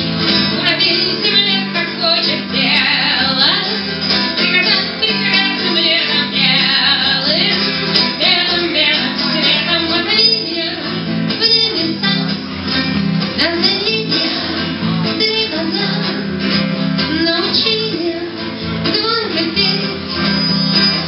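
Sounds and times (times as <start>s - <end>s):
strummed guitar: 0.0s - 21.0s
woman singing rock song: 0.0s - 21.0s.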